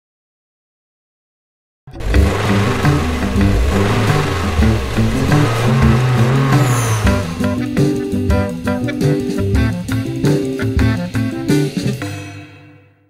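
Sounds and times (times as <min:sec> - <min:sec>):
car engine revving: 0:01.9 - 0:08.7
upbeat jazz music: 0:01.9 - 0:12.1.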